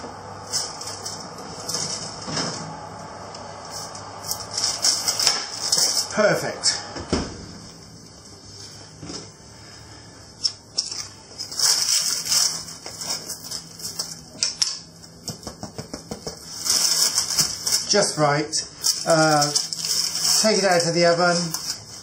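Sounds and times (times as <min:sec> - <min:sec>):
parchment paper crinkling: 0:03.7 - 0:06.2, 0:10.4 - 0:22.0.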